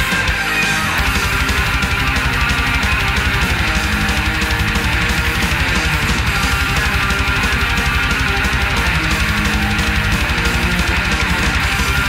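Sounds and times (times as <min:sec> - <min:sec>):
distorted electric guitars: 0:00.0 - 0:12.0
fast drum beat: 0:00.0 - 0:12.0.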